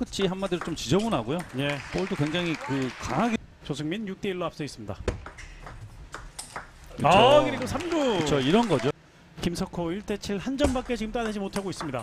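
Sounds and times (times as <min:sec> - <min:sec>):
table tennis ball hits: 0:00.4 - 0:01.6, 0:05.1 - 0:06.8.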